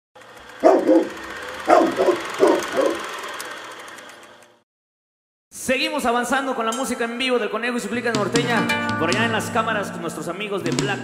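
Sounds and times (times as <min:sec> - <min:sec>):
dog barking: 0:00.6 - 0:03.1.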